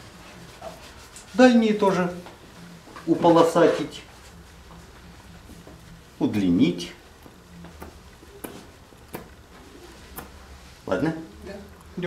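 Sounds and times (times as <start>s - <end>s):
low room hum: 0.0s - 12.0s
paintbrush tapping on canvas: 7.7s - 9.4s.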